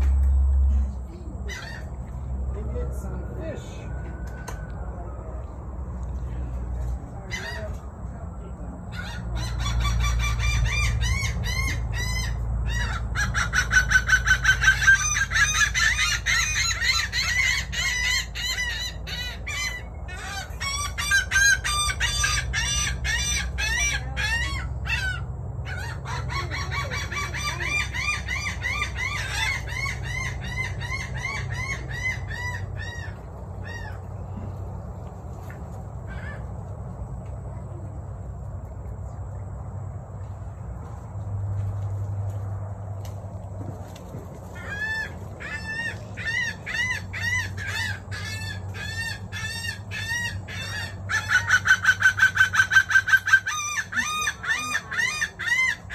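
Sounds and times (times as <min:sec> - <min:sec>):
caged birds calling: 0:00.0 - 0:55.9.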